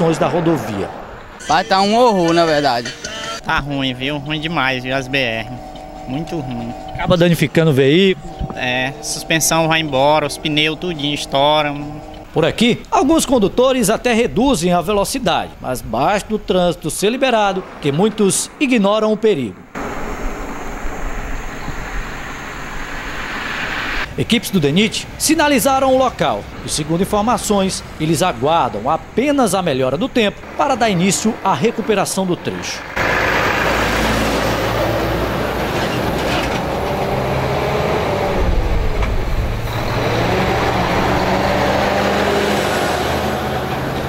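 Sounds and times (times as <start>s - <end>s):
highway traffic passing: 0.0s - 44.0s.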